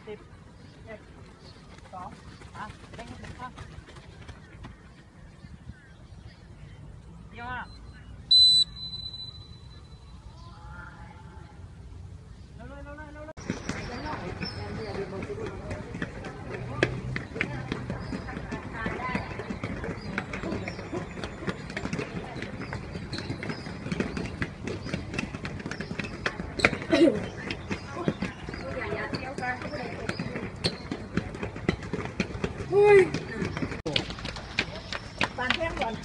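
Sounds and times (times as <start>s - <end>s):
voices chattering and calling out: 0.0s - 36.0s.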